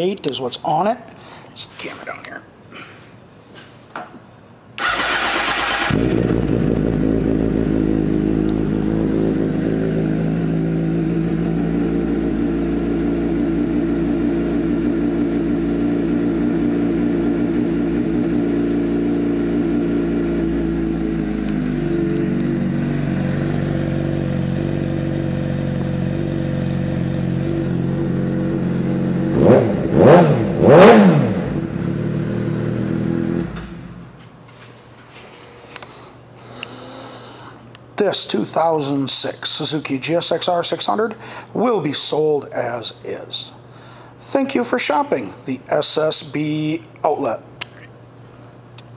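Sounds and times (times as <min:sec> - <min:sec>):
motorcycle engine revving: 0:04.8 - 0:33.8
motorcycle engine idling: 0:05.2 - 0:29.3.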